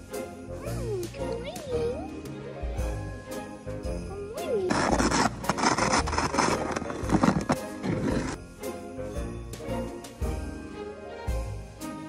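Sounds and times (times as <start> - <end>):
background music: 0.0 - 12.0
snow shovel scraping pavement: 4.7 - 8.4.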